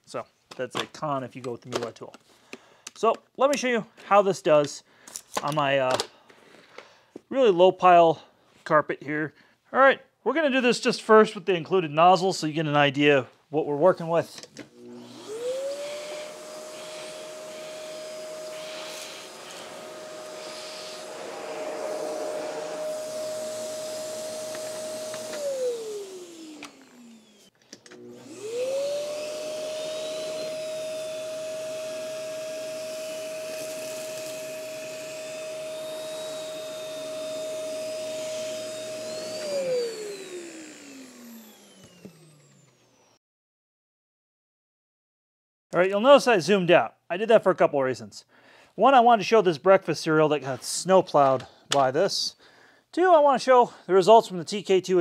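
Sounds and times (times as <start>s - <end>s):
vacuum cleaner motor whine: 14.6s - 43.2s
vacuum nozzle on carpet: 14.6s - 43.2s.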